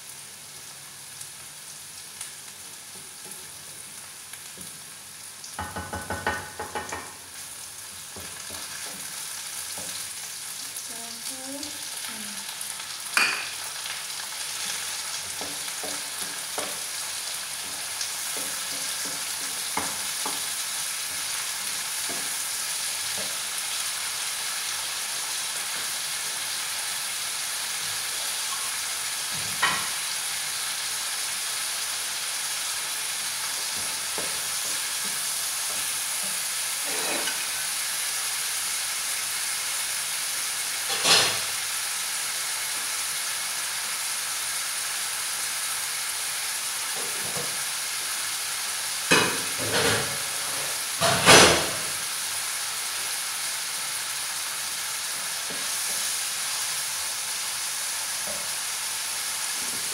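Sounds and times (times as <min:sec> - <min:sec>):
food sizzling in a frying pan: 0:00.0 - 0:59.9.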